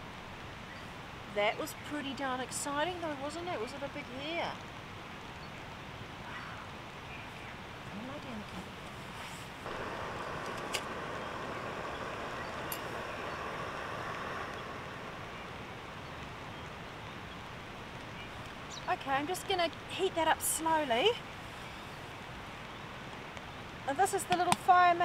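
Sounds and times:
gas hiss: 0:09.6 - 0:16.0
igniter clicks: 0:09.7 - 0:15.4.

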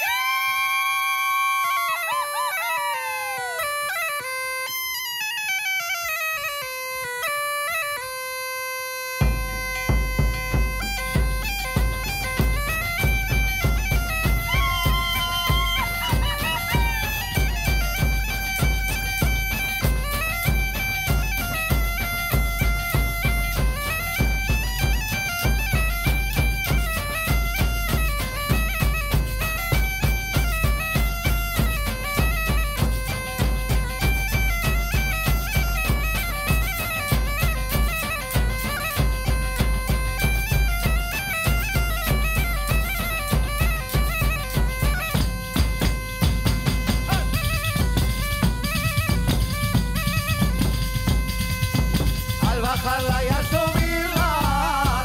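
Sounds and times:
bagpipe folk melody: 0:00.0 - 0:55.0
hand-struck frame drums: 0:09.2 - 0:55.0.

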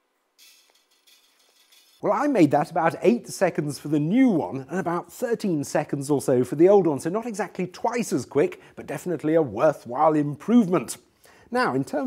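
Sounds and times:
high hiss: 0:00.0 - 0:02.0.

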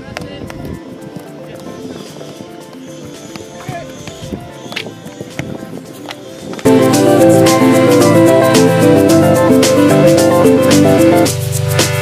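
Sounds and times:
background music: 0:00.2 - 0:12.0.

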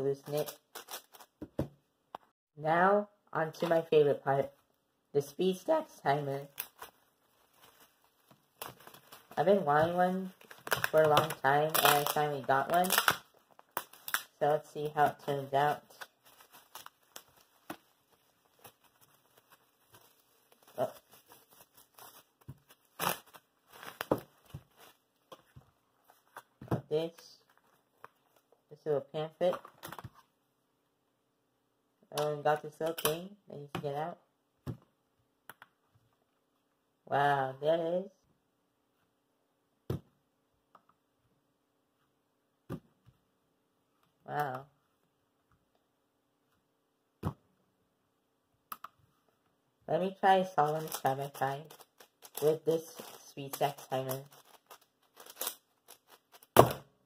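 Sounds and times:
plastic bag crinkling: 0:06.4 - 0:14.4, 0:15.8 - 0:25.5, 0:50.6 - 0:56.6.

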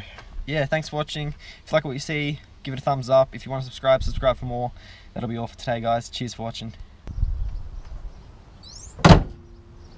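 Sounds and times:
short rising bird chirps: 0:07.1 - 0:09.9.

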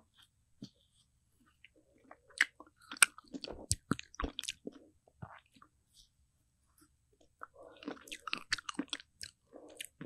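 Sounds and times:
wet chewing and mouth sounds: 0:01.6 - 0:05.7, 0:07.2 - 0:10.0.

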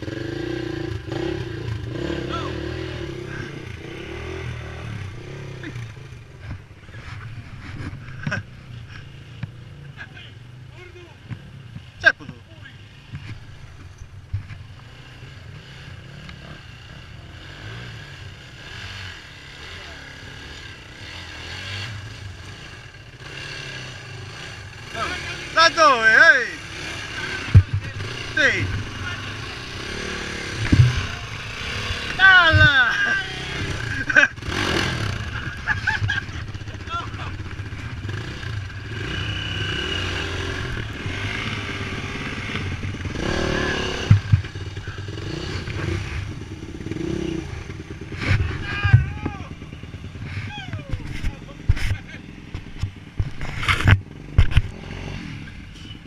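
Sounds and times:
dirt bike engines revving: 0:00.0 - 0:56.0.

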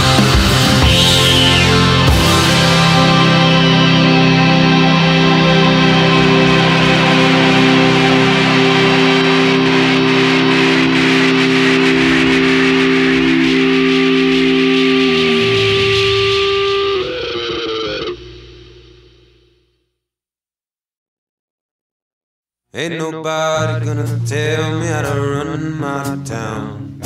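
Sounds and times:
rock band holding final chord: 0:00.0 - 0:19.5
electric guitar: 0:00.0 - 0:19.6.

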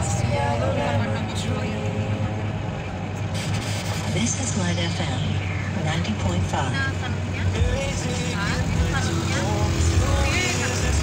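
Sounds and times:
people talking: 0:00.0 - 0:02.4, 0:04.1 - 0:09.6
car engine drone: 0:00.0 - 0:11.0
road noise: 0:00.0 - 0:11.0.

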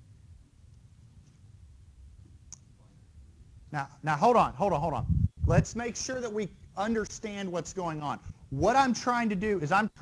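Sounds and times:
low steady hum: 0:00.0 - 0:10.0
man's voice: 0:03.8 - 0:10.0.

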